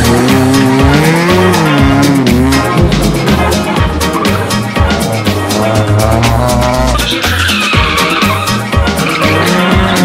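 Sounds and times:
background music with beat: 0.0 - 10.0
car tyres squealing: 0.0 - 10.0.

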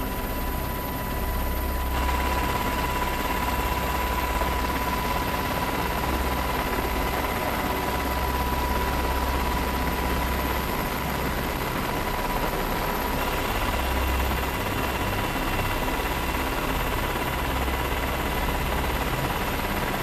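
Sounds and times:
aircraft engines droning: 0.0 - 20.0
faint steady whine: 0.0 - 20.0.

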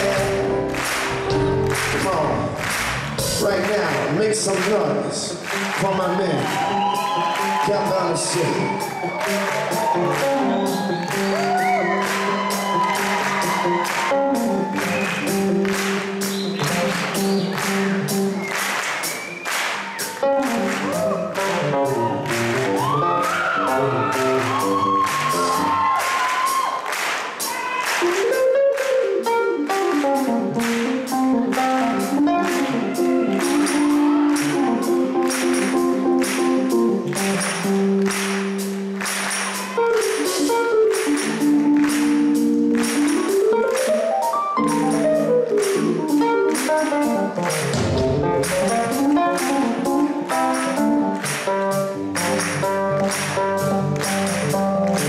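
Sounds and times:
organ-like keyboard solo: 0.0 - 3.8, 28.1 - 55.0.

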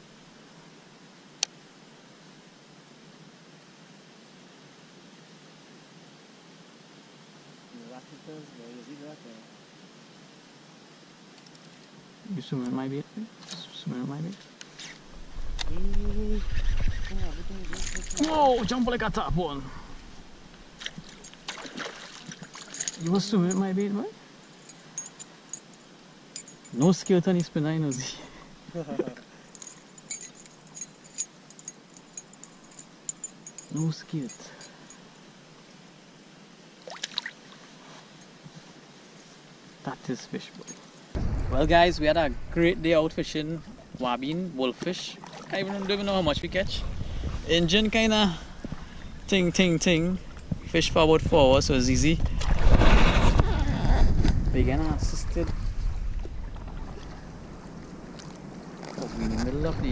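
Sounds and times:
wind rumbling on microphone: 15.0 - 21.3, 41.2 - 44.0, 45.8 - 59.9
metal lure blades jingling: 17.3 - 19.0, 19.9 - 28.2, 29.5 - 35.0
water moving around paddle board: 20.8 - 22.7, 45.2 - 46.0, 52.2 - 53.4, 55.7 - 59.6.

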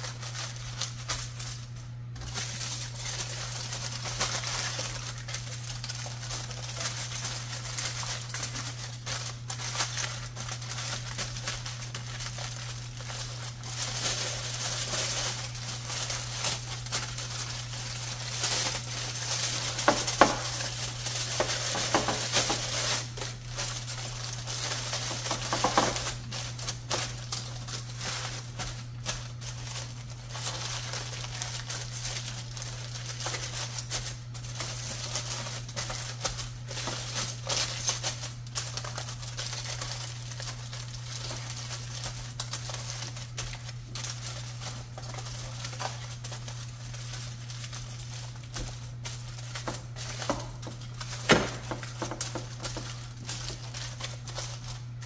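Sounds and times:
foil and paper crinkling: 0.0 - 55.0.

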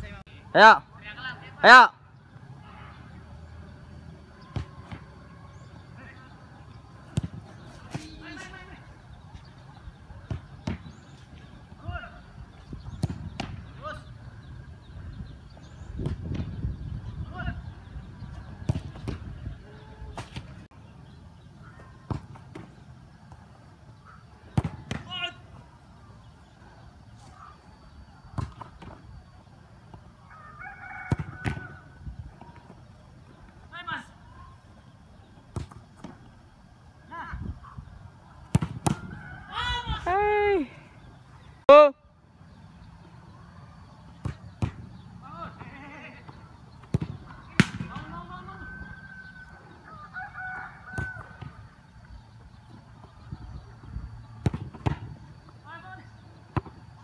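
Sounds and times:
football kicked hard: 7.1 - 8.1, 12.8 - 13.6, 18.6 - 19.4, 24.5 - 25.1, 31.1 - 31.8, 38.5 - 39.1, 44.2 - 45.0, 46.8 - 48.2, 54.4 - 55.2.

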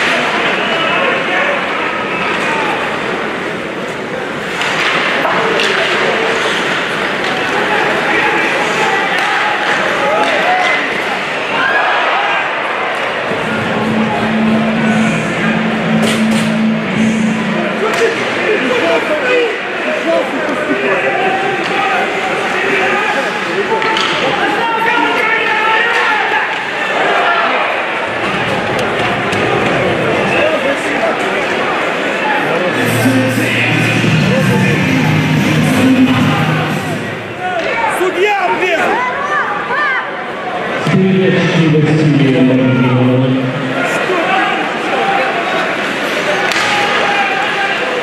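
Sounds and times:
crowd voices in arena: 0.0 - 48.0
steady low tone: 13.3 - 18.6, 32.6 - 37.4.

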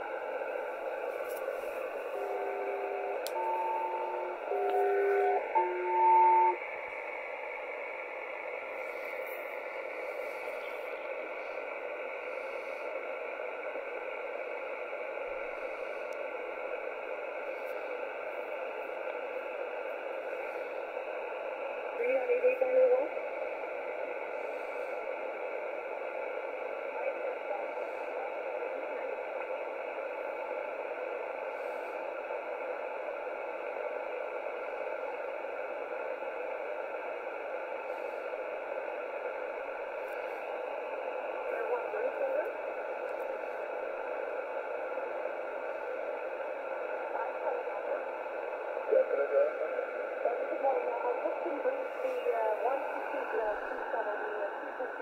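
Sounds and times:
radio static hiss: 0.0 - 55.0
two-note radio tone blocks: 2.1 - 6.6.

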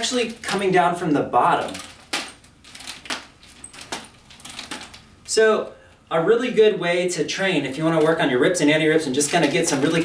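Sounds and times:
metal chain jangling: 1.7 - 5.1.

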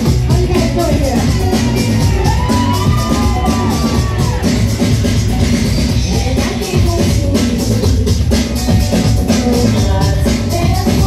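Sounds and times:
drum kit and bass guitar: 0.0 - 11.0.

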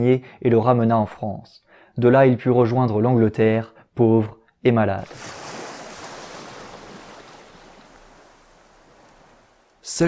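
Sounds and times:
ocean surf and wind: 5.0 - 9.9.

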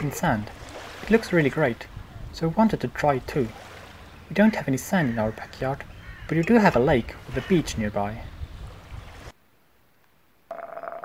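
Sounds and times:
outdoor ambience: 0.0 - 11.0
steady buzzing ringing tone: 10.5 - 11.0.

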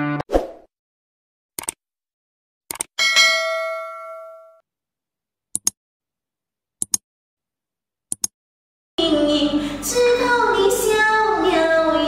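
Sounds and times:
notification bell ding: 3.0 - 4.6.

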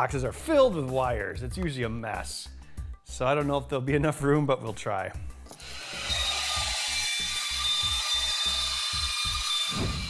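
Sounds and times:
band saw cutting plastic: 5.5 - 10.0.

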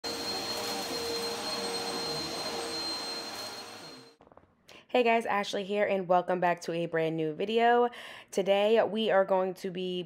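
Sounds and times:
vacuum cleaner running: 0.0 - 4.2.

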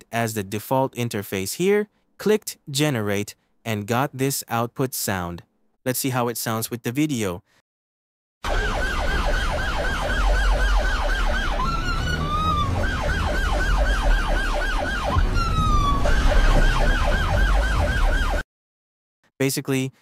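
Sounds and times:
gliding siren tone: 8.4 - 18.4
rapid yelping siren: 8.4 - 18.4.

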